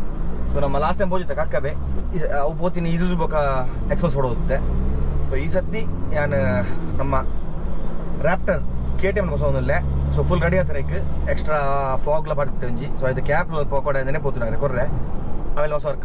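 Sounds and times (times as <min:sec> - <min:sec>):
car engine droning: 0:00.0 - 0:16.0
road noise: 0:00.0 - 0:16.0
man talking: 0:00.6 - 0:04.7, 0:05.3 - 0:07.3, 0:08.2 - 0:15.0, 0:15.6 - 0:16.0.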